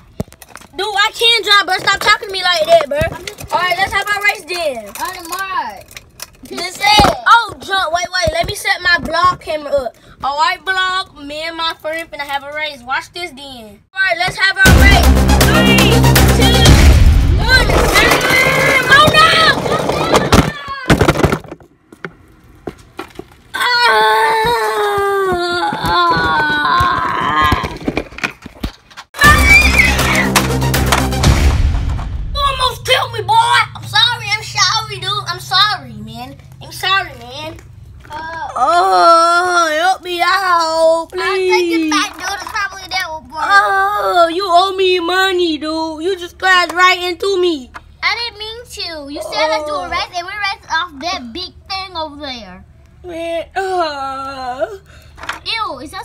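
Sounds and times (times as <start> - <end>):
background music: 14.6 - 17.4, 29.2 - 32.4
child's wavering wordless cries: 23.5 - 27.8, 38.1 - 42.4, 43.2 - 44.7, 49.0 - 50.1, 53.0 - 54.9
person crying out: 23.6 - 27.8.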